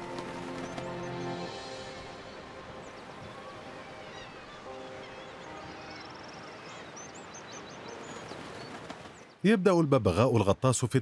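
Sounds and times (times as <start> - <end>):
small birds chirping: 0.0 - 9.6.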